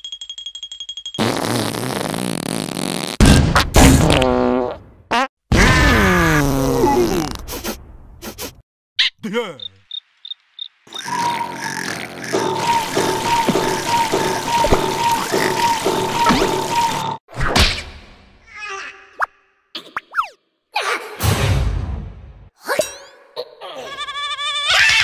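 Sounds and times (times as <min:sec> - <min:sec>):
cartoon character groans: 0:05.6 - 0:07.4
cricket chirping: 0:09.6 - 0:11.7.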